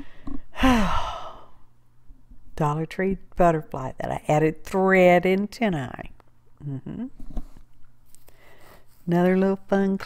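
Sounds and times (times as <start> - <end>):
woman sighing: 0.0 - 1.6.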